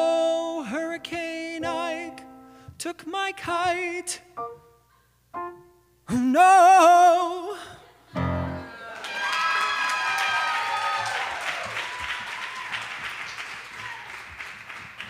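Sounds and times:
man singing with vibrato: 0.0 - 4.4, 6.0 - 7.9
audience applause and cheers: 8.5 - 15.0.

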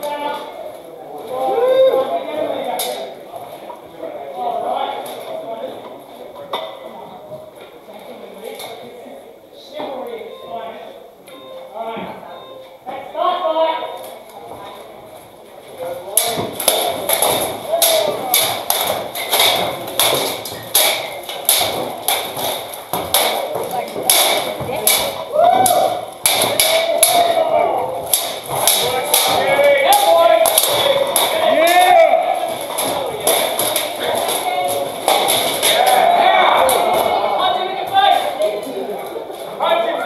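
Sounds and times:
swords clashing on armour: 16.1 - 27.5, 28.1 - 36.1
spectators shouting: 25.2 - 27.9, 35.0 - 38.2.

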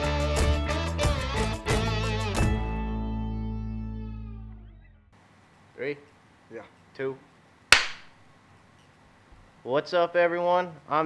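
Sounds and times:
sharp clap: 7.7 - 8.2.

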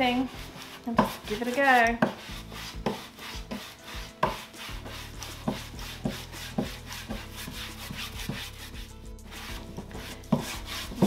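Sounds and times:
wax brush scrubbing wood: 0.0 - 11.0.

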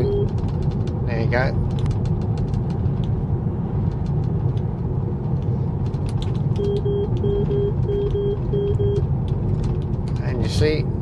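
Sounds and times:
road and tyre rumble: 0.0 - 11.0.

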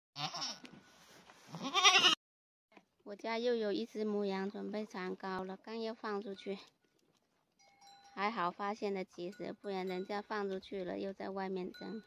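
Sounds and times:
goat bleating: 0.2 - 0.7, 1.5 - 2.2.

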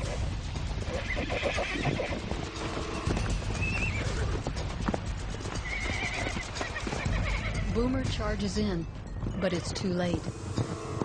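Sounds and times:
horses squealing and neighing: 0.0 - 4.7, 5.4 - 7.9
hooves thudding: 0.0 - 11.0.

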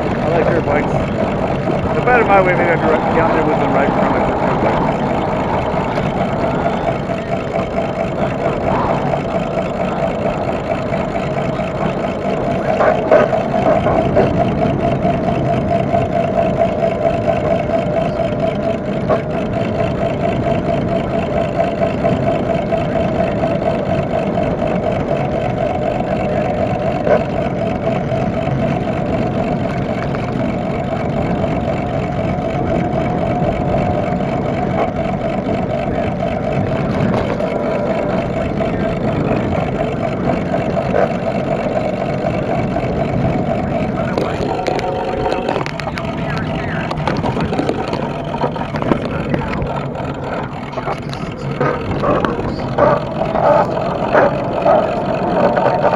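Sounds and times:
electric bicycle motor whining: 0.0 - 55.9
wind and tyre noise: 0.0 - 55.9.

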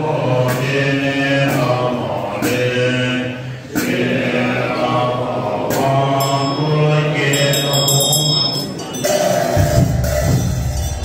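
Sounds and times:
man chanting a prayer: 4.3 - 8.8
hand bell ringing: 6.2 - 11.0.

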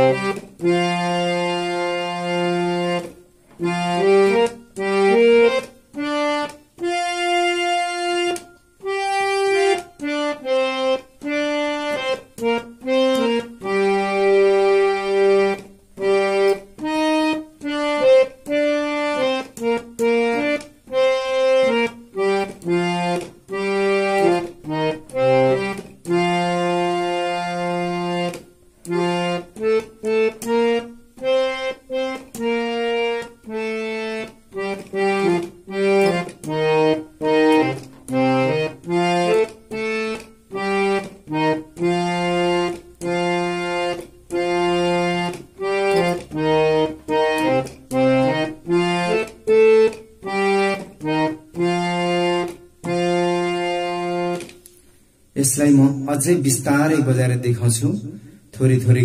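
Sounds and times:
harmonium melody: 0.0 - 59.0.

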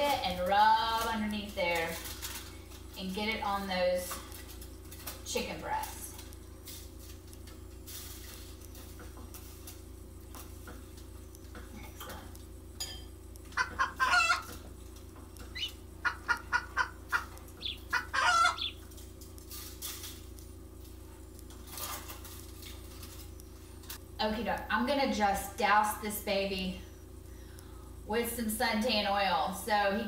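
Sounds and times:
steady low hum: 0.0 - 30.0
chicken clucking: 13.5 - 14.6, 15.5 - 18.8.

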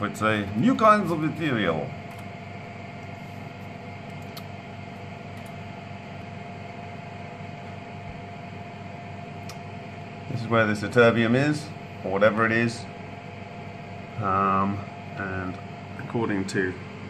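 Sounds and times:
mechanical hum: 0.0 - 17.0
mid-pitched whine: 0.0 - 17.0.

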